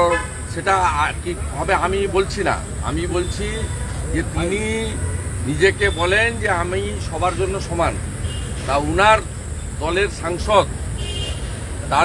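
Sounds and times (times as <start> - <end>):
man speaking: 0.0 - 8.0, 8.6 - 10.7
street traffic rumble: 0.0 - 12.0.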